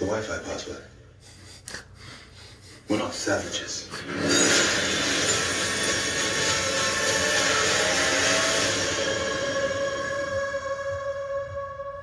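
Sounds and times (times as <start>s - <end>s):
sustained musical tones: 4.0s - 12.0s
rushing noise swell: 4.2s - 12.0s.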